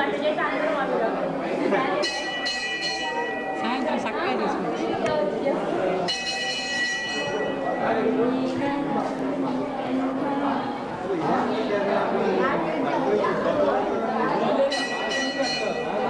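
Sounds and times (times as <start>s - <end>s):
many people talking: 0.0s - 16.0s
bell ringing: 2.0s - 4.8s, 6.0s - 8.5s, 14.6s - 16.0s.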